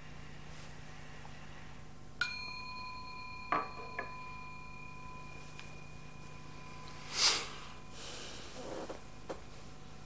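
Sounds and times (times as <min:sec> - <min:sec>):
steady low hum: 0:00.0 - 0:10.0
metal bell ringing: 0:02.2 - 0:09.3.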